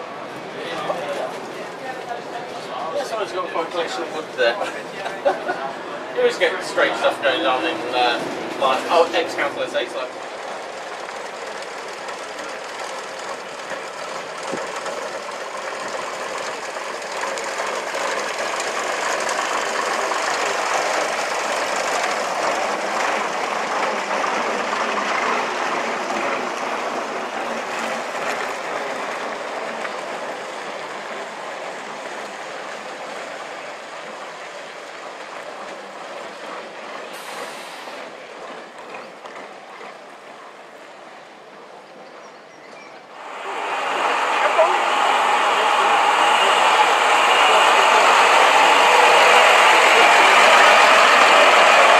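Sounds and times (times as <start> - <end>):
train passing: 0.0 - 42.1, 43.0 - 51.9.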